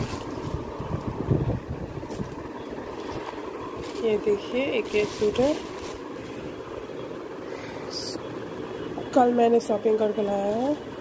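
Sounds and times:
steady background hum: 0.0s - 11.0s
clothes rustling: 2.0s - 6.8s.

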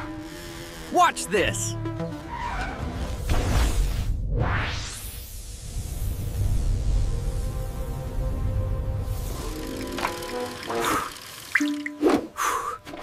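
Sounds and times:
background music: 0.9s - 3.0s, 6.7s - 12.7s.

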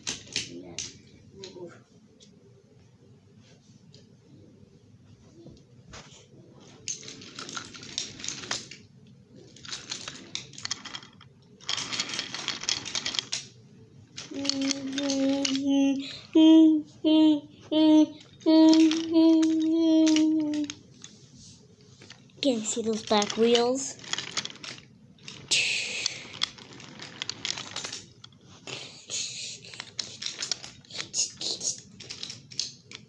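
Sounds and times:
toy train rattling on wooden track: 6.8s - 8.8s, 9.4s - 13.5s, 14.2s - 16.0s, 18.2s - 21.1s, 22.0s - 33.0s.

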